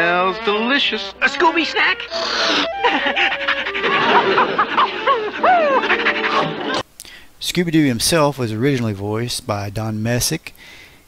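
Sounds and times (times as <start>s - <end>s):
cartoon voice panting and whining: 1.2s - 6.8s.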